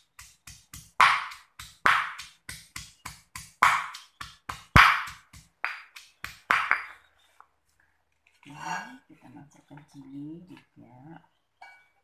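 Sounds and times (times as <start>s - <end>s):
stone pestle pounding in mortar: 0.0s - 7.0s.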